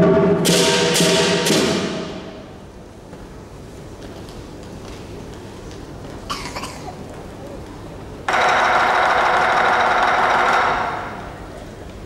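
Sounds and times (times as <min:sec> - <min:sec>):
loud gong hit: 0:00.0 - 0:02.5
cymbal crashes: 0:00.0 - 0:02.6.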